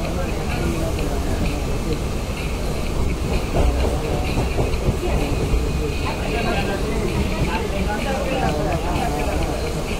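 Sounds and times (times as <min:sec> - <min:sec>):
train wheel clacks: 0:00.0 - 0:09.9
train wheels rumbling on rail: 0:00.0 - 0:09.9.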